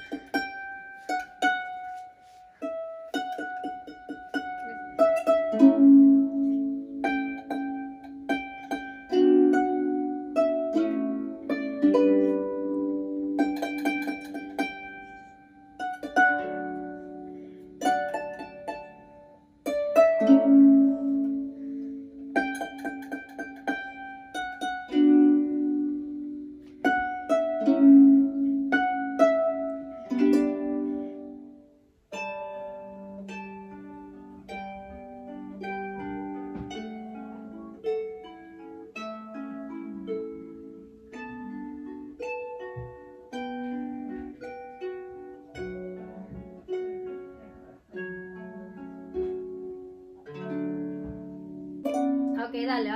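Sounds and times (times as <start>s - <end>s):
harp plucked notes and chords: 0.0s - 52.9s.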